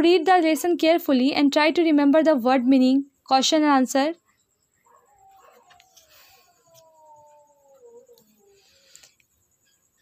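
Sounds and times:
dog whining: 4.9s - 8.9s.

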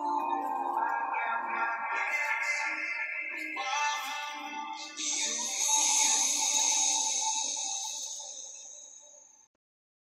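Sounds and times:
music of sustained held notes: 0.0s - 9.4s.

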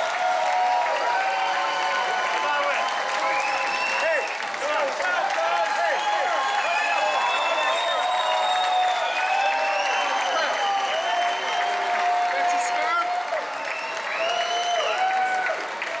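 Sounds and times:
audience cheering: 0.0s - 16.0s
audience clapping: 0.0s - 16.0s.

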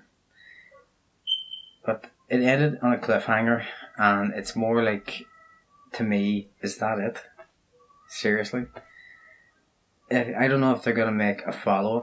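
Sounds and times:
faint thin whistly tones: 0.4s - 1.9s
high whistling tone: 1.3s - 1.9s.

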